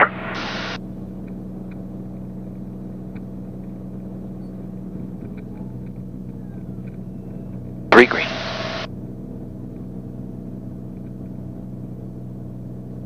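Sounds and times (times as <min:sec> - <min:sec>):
propeller engine drone: 0:00.0 - 0:13.0
faint ticks: 0:01.2 - 0:04.0, 0:10.9 - 0:11.4.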